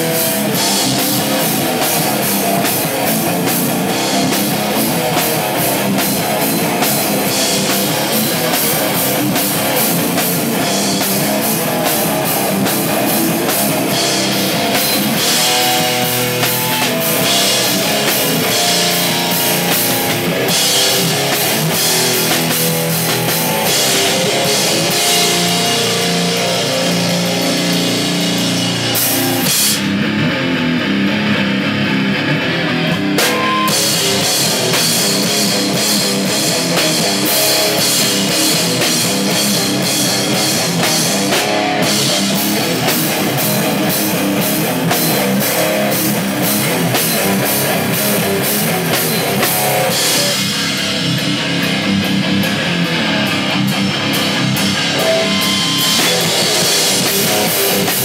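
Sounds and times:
rock band playing live: 0.0 - 58.0.

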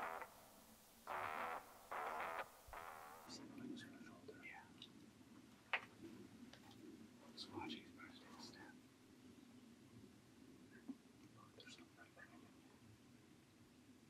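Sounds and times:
person whispering: 3.3 - 4.8, 7.3 - 8.8, 11.4 - 12.7.

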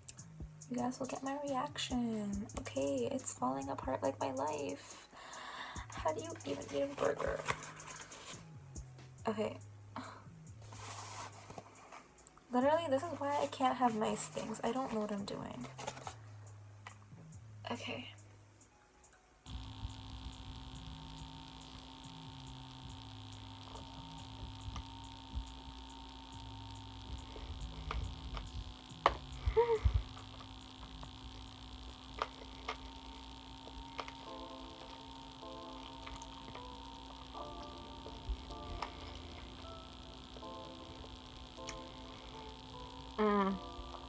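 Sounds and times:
electrical hum: 0.0 - 44.0
faint background music: 0.0 - 44.0.

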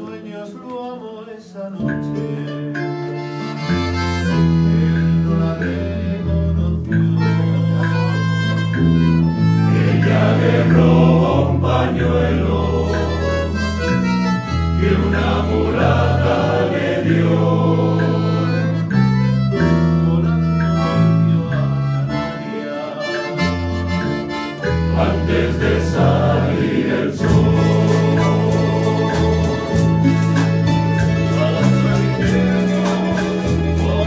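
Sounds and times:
accordion: 0.0 - 1.2, 1.9 - 34.0
male choir singing in harmony: 0.0 - 2.7, 4.6 - 7.7, 9.6 - 24.0, 24.6 - 34.0
classical guitars: 0.0 - 34.0
keyboard: 0.0 - 34.0.

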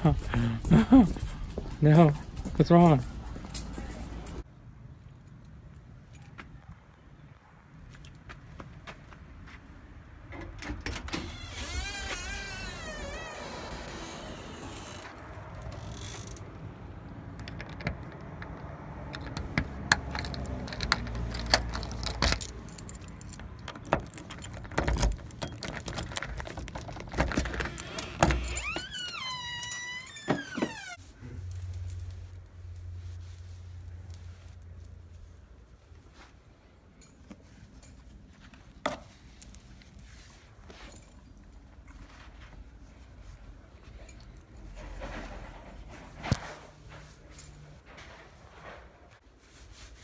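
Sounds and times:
dog harness jingling: 0.1 - 4.4
key ring jangling: 0.2 - 4.4, 20.0 - 27.0.

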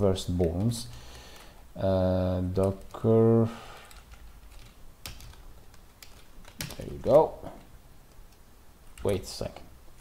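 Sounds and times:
person speaking: 0.0 - 1.0, 1.8 - 3.7, 6.6 - 7.7, 8.9 - 9.7.

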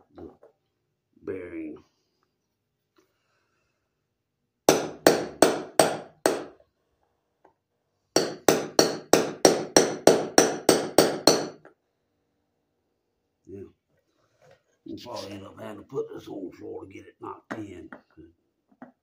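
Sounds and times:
hammer striking metal with ring: 8.2 - 11.6.

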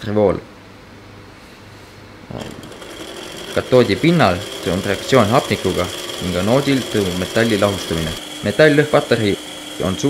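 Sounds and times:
toy car motor whining: 2.4 - 10.0.

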